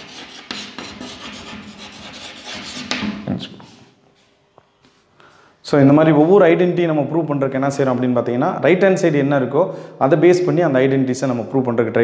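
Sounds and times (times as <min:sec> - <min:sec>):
chalk scratching on a blackboard: 0:00.0 - 0:03.8.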